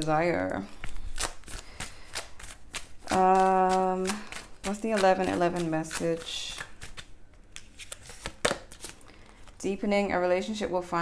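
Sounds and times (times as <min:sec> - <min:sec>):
cards being shuffled: 0:00.7 - 0:09.6.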